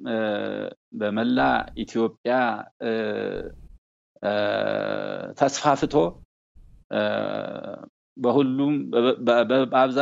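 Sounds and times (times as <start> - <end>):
elderly man speaking: 0.0 - 3.6, 4.2 - 6.2, 6.9 - 10.0.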